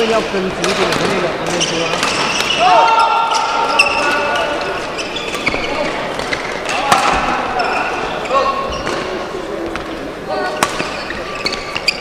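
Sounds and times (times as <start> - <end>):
shoes squeaking on court floor: 0.0 - 12.0
rackets hitting shuttlecock: 0.2 - 2.6, 5.3 - 7.4, 10.6 - 11.0.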